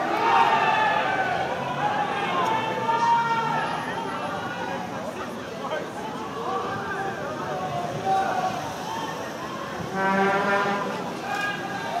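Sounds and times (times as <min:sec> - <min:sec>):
low horn blast: 0:09.9 - 0:11.1.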